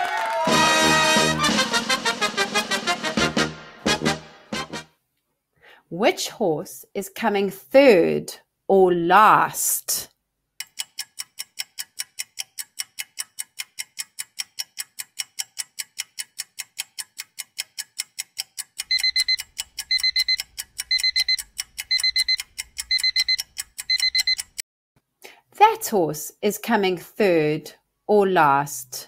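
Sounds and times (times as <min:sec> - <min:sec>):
clock ticking fast: 0:10.6 - 0:24.6
alarm clock beeping: 0:18.8 - 0:24.6.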